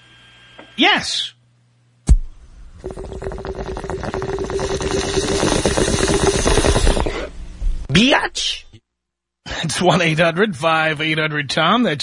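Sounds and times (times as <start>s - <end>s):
water bubbling through bong: 2.7s - 7.4s.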